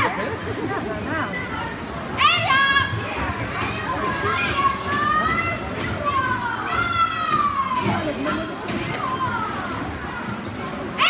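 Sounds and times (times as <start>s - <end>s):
crowd hubbub: 0.0s - 11.0s
children shouting and cheering: 2.2s - 3.0s, 3.6s - 11.0s.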